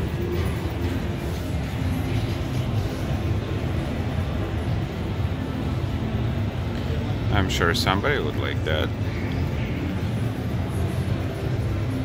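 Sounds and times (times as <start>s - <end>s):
exhibition hall background rumble: 0.0s - 12.0s
faint music: 0.0s - 12.0s.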